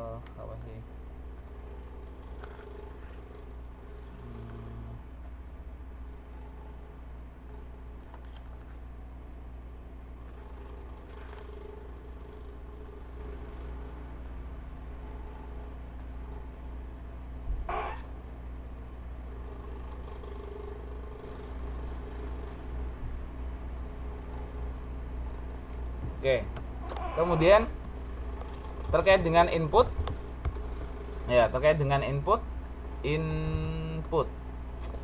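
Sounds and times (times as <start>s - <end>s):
low background hum: 0.0s - 35.0s
faint wavering tones: 1.0s - 8.1s
person speaking: 26.2s - 27.8s, 31.3s - 34.3s.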